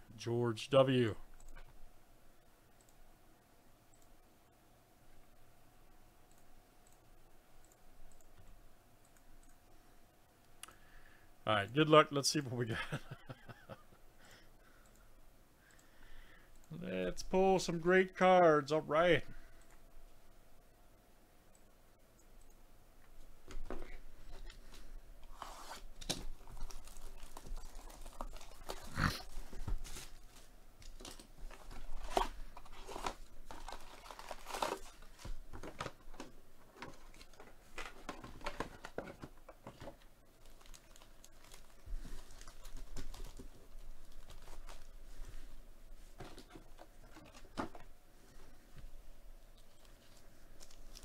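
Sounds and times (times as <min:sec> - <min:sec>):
wrapping tearing: 0:25.3 - 0:35.2, 0:40.4 - 0:44.9, 0:49.8 - 0:51.0
foil packs crinkling: 0:26.0 - 0:36.3, 0:40.4 - 0:45.0, 0:49.8 - 0:51.0.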